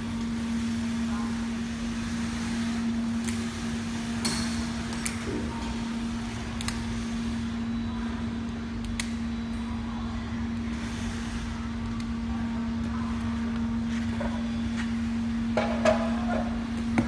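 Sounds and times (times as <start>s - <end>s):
factory machinery humming: 0.0s - 17.0s.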